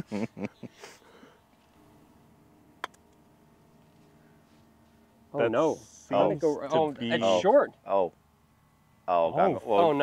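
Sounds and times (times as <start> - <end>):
men laughing: 0.0 - 1.3.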